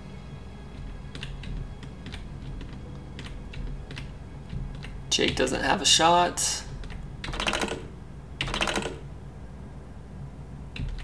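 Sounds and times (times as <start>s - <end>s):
faint steady low hum: 0.0s - 11.0s
computer keyboard keys clicking: 1.1s - 5.6s, 6.8s - 9.1s, 10.8s - 11.0s.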